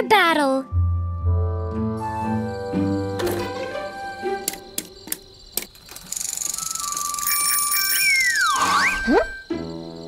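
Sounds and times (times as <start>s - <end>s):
bicycle freewheel ticking: 6.0s - 8.0s
cartoon music: 6.6s - 9.6s.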